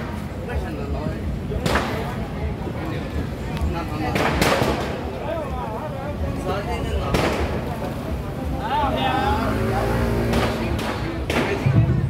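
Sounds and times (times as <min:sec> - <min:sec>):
crowd voices hubbub: 0:00.0 - 0:12.0
firecracker bangs: 0:04.1 - 0:05.1, 0:07.1 - 0:07.7, 0:10.2 - 0:12.0.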